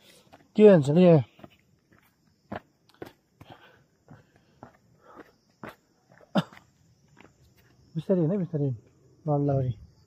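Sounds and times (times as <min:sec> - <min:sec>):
footsteps on trail: 0:00.0 - 0:07.9.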